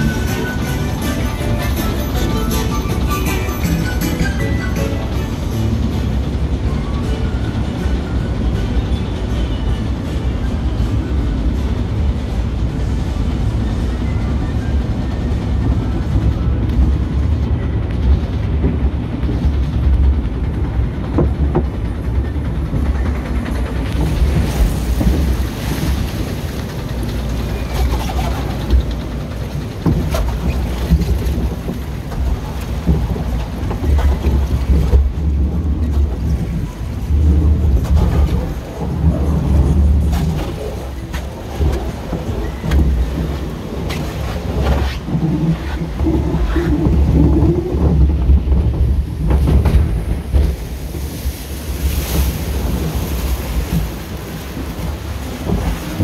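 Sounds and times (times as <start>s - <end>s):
boat and water rumble: 0.0s - 56.0s
water splashing: 24.0s - 56.0s.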